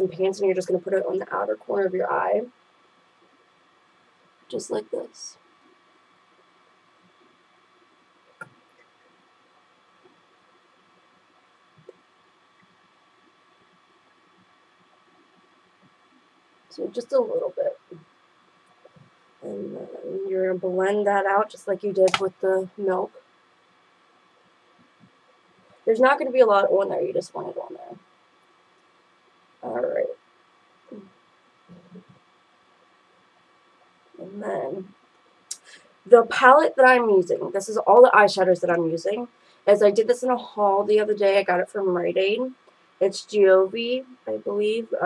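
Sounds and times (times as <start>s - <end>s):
faint background hiss: 0.0s - 45.0s
low hum: 0.0s - 45.0s.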